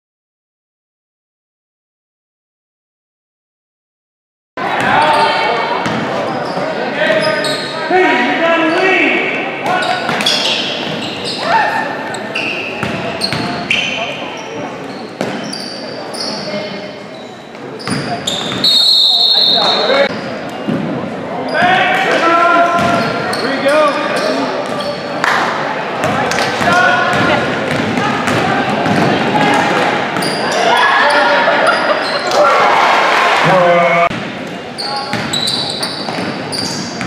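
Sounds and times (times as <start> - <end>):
sneakers squeaking: 4.7 - 7.9, 8.6 - 25.2, 26.0 - 32.5, 34.1 - 37.0
spectators shouting and cheering: 25.6 - 34.1.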